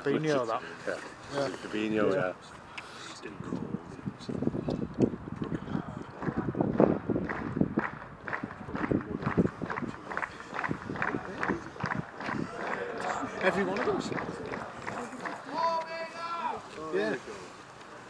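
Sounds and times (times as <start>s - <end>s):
group of people talking: 0.0s - 18.0s.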